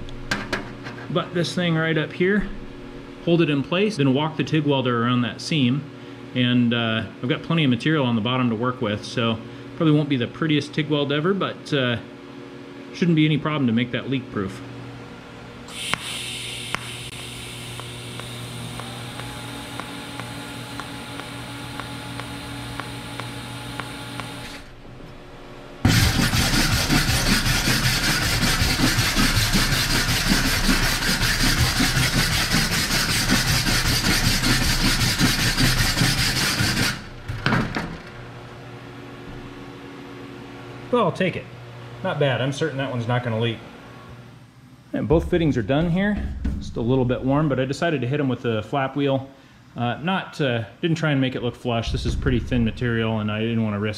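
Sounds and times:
welding arc hissing: 15.7 - 24.7
wire brush scrubbing metal: 25.9 - 37.1.

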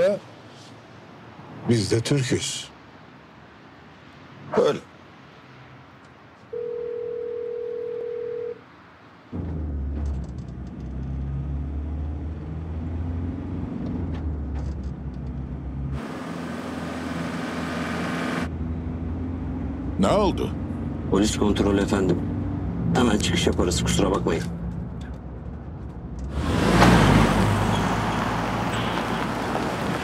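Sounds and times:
car engine rumble and road noise: 8.6 - 30.0.

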